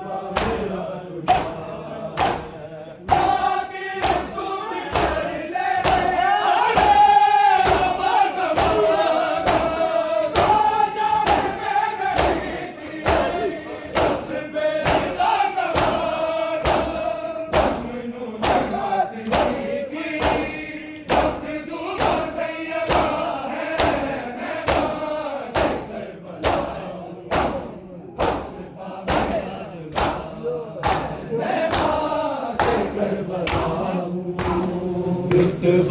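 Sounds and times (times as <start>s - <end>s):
men chanting in chorus: 0.0s - 35.9s
hands slapping bare chests: 0.4s - 0.7s, 2.2s - 2.5s, 3.1s - 33.8s.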